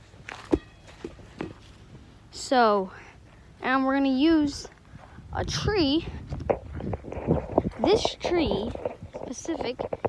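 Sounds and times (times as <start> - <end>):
rubber ball bouncing on grass: 0.3 - 1.6, 6.3 - 10.0.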